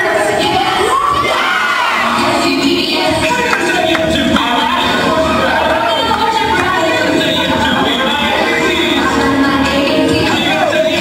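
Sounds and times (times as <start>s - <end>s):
children shouting and cheering: 0.0s - 11.0s.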